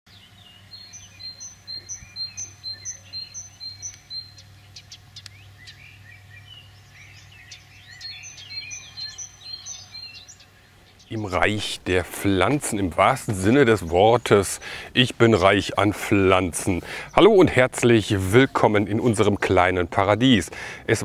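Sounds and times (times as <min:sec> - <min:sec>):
faint low hum: 0:00.1 - 0:21.0
songbirds chirping: 0:00.1 - 0:21.0.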